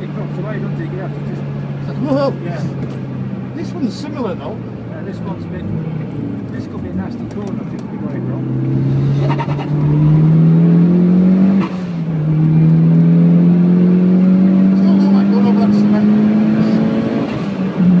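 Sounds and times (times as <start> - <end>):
car engine revving at full throttle: 0.0 - 18.0.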